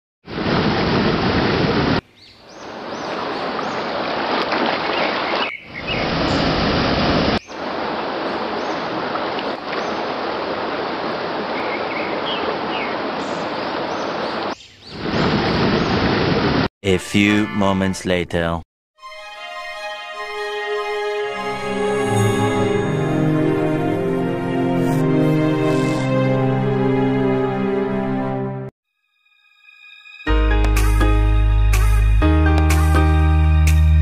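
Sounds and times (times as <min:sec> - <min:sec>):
waterfall rushing water: 0:06.1 - 0:14.5.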